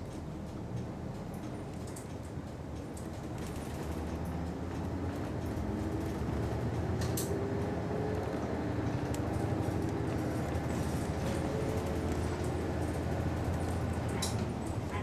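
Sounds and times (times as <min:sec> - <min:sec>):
bus diesel engine accelerating: 0:00.0 - 0:15.0
road noise: 0:00.0 - 0:15.0.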